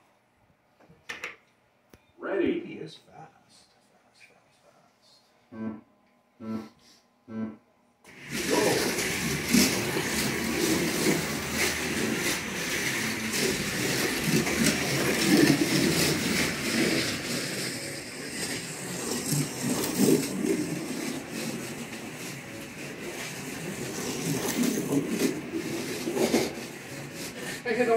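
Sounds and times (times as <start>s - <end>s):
short pitched tone: 5.5s - 6.7s, 7.3s - 7.6s
slot cars whirring: 8.1s - 27.9s.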